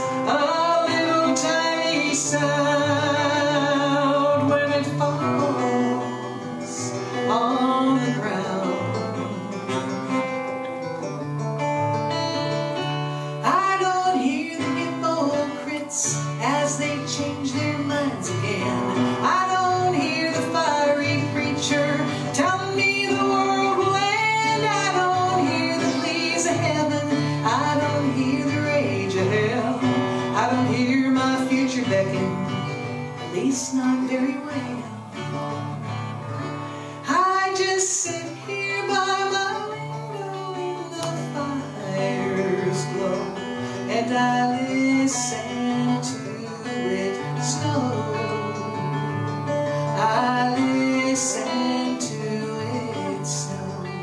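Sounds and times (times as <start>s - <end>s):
woman singing: 0.0s - 10.5s, 11.9s - 54.0s
acoustic guitar: 0.0s - 54.0s.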